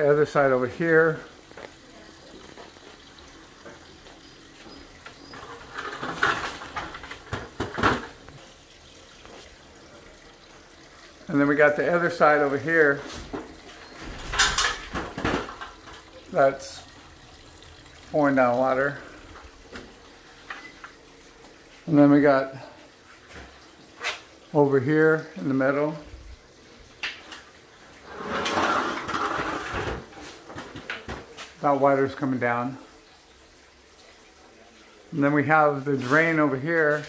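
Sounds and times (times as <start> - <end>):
water pouring and splashing: 0.0 - 37.0.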